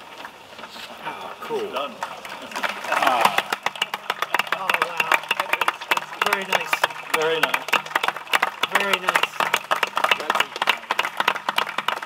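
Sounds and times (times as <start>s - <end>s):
group applauding: 1.3s - 12.0s.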